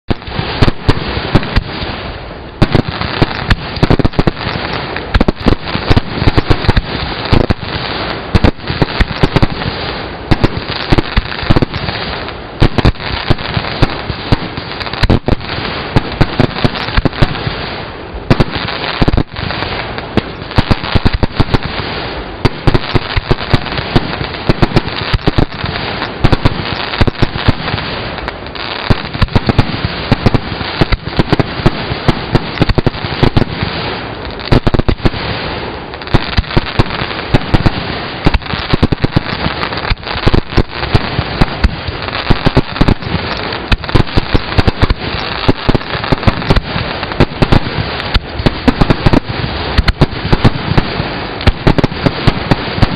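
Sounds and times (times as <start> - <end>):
fireworks bursting and crackling: 0.0 - 52.9.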